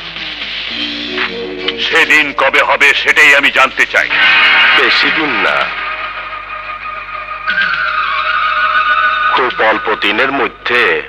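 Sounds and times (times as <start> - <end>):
film score sustained chords: 0.7 - 11.0
man speaking: 1.7 - 4.2.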